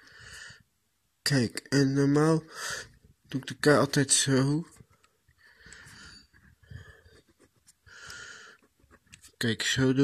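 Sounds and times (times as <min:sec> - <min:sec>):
pen scratching on paper: 0:05.9 - 0:09.6.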